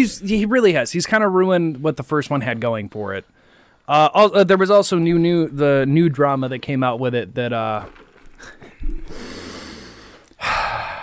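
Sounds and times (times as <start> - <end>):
person breathing in: 8.4 - 11.0
person sighing breath out: 8.4 - 11.0.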